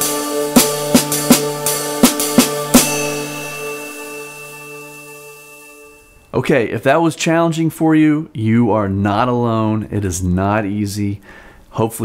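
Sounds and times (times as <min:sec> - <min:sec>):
snare drum strokes: 0:00.0 - 0:04.1
sustained drone note: 0:00.0 - 0:06.1
cymbal wash with sizzle: 0:00.0 - 0:06.2.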